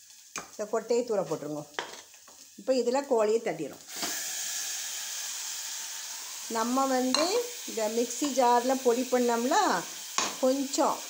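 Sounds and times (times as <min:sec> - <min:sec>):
chicken sizzling in a pot: 0:00.0 - 0:11.0.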